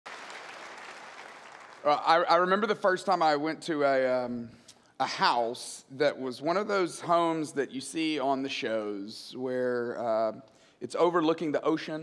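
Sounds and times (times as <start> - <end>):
audience applauding: 0.0 - 2.2
man's voice: 1.8 - 12.0.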